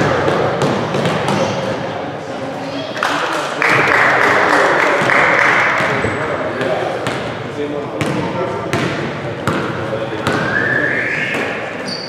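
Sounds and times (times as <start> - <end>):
players' voices: 0.0 - 12.0
basketball bouncing on hardwood floor: 0.1 - 1.5, 8.0 - 10.4.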